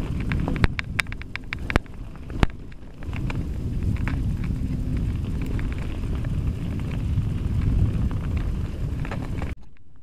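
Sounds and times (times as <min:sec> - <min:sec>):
bike clicks and rattles: 0:00.0 - 0:10.0
bike tyres on gravel: 0:00.0 - 0:10.0
wind on microphone: 0:00.0 - 0:10.0.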